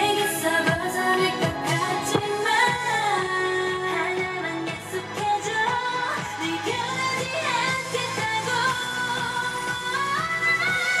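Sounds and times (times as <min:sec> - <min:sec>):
pop dance song with female singing: 0:00.0 - 0:11.0.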